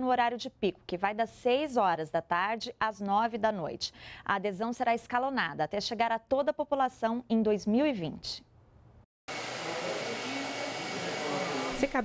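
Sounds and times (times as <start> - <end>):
hair dryer running: 9.3 - 12.0.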